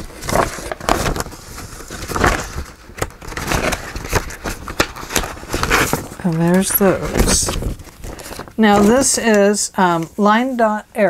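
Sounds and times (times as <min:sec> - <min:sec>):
paper rustling: 0:00.0 - 0:10.5.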